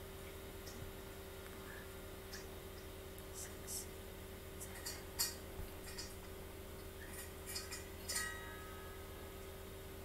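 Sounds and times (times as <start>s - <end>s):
low electrical hum: 0.0s - 10.0s
short ringing tone: 8.2s - 9.4s.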